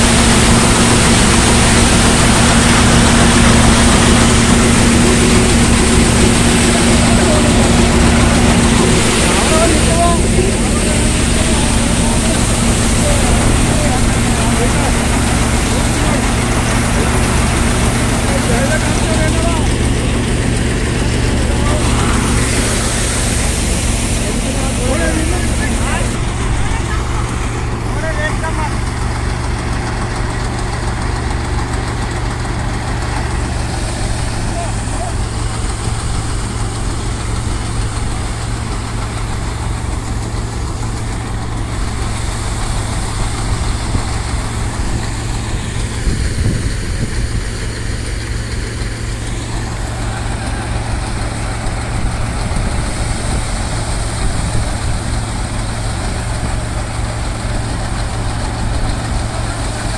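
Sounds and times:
low engine hum: 0:00.0 - 0:59.9
threshing machine rushing noise: 0:00.0 - 0:59.9.

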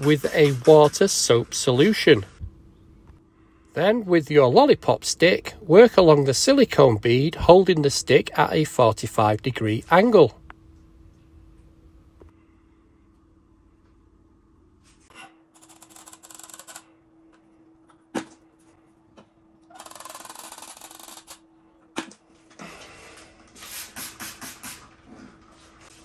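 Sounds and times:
faint steady hum: 0:00.7 - 0:23.5.

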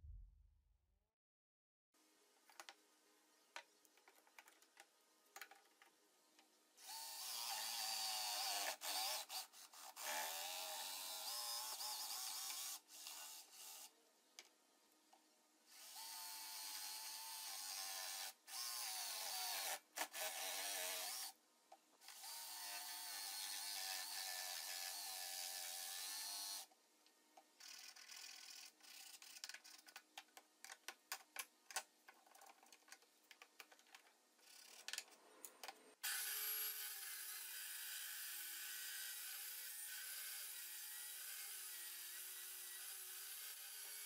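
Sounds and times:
electric jigsaw cutting wood: 0:06.8 - 0:13.9, 0:15.7 - 0:21.3, 0:22.0 - 0:26.7, 0:36.0 - 0:44.0.

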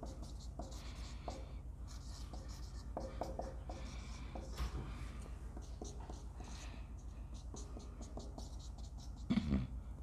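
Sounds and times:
marker squeaking on whiteboard: 0:00.0 - 0:04.6, 0:05.6 - 0:09.5.

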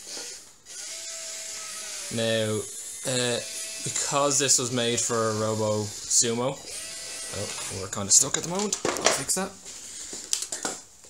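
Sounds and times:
robot gear motors whining: 0:00.0 - 0:08.5.

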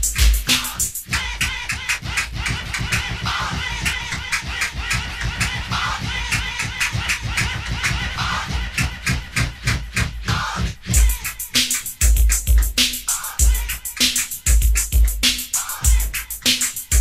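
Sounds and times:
electronic drum beat: 0:00.0 - 0:17.0.

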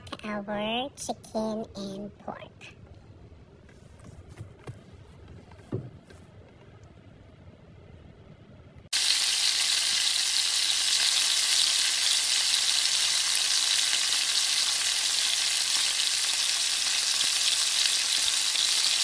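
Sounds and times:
meat sizzling in a pot: 0:08.9 - 0:19.0.

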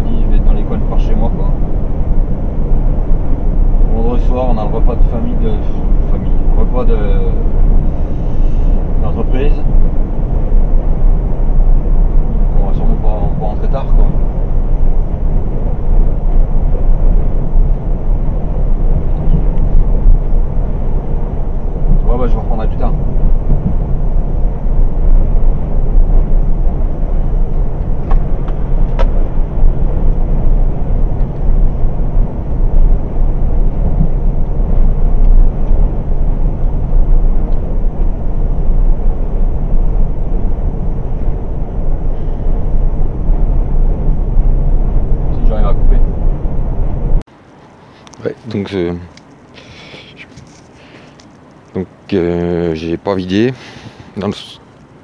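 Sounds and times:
truck engine and tyres droning: 0:00.0 - 0:55.0.

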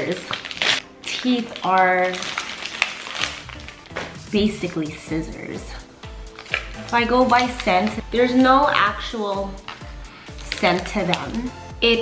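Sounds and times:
plastic wrapper crinkling: 0:00.0 - 0:04.3, 0:06.1 - 0:09.0, 0:09.6 - 0:11.6
quiet background music: 0:00.0 - 0:12.0.

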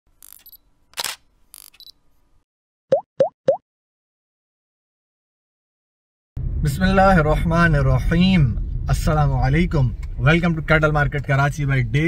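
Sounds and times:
plops rising in pitch: 0:02.9 - 0:03.6.

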